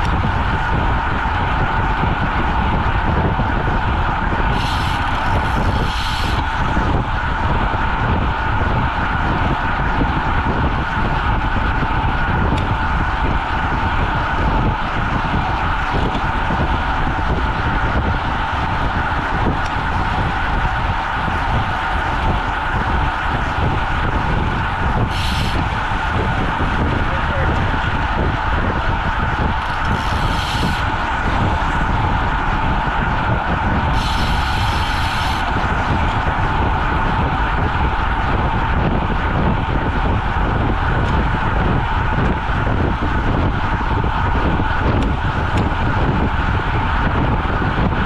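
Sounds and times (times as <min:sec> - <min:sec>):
tyre road noise: 0:00.0 - 0:48.0
wind rushing over microphone: 0:00.0 - 0:48.0.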